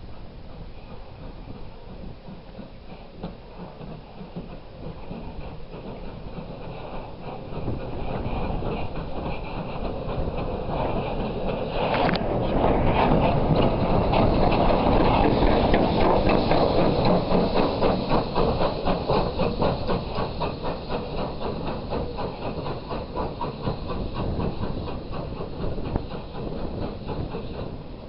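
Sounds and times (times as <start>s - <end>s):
steam locomotive exhaust beats: 0.0s - 28.0s
train wheels on rails: 0.0s - 28.0s.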